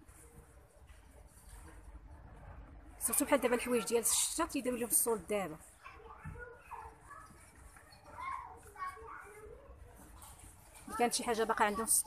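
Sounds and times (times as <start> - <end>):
background chatter of voices: 0.0 - 12.0.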